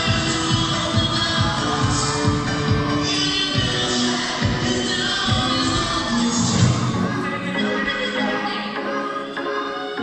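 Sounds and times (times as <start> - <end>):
loud dance music: 0.0 - 10.0.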